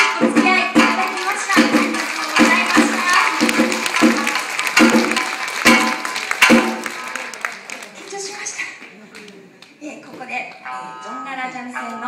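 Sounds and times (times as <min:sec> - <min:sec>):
shamisen plucked notes: 0:00.0 - 0:07.3
sharp percussive strikes: 0:00.0 - 0:07.4.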